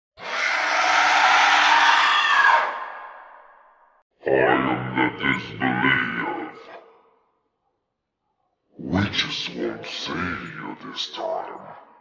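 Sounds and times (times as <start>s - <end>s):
harsh distorted scream: 0.2s - 3.6s.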